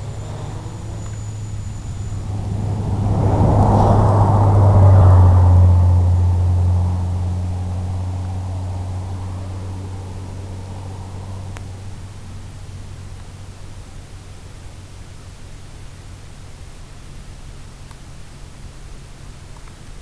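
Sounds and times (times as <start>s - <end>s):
electric motors humming: 0.0s - 4.6s
rushing air noise: 0.0s - 12.5s.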